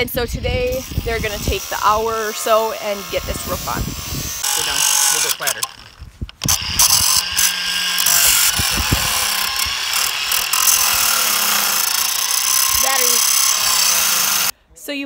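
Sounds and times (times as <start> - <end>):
angle grinder grinding metal: 0.5 - 14.5.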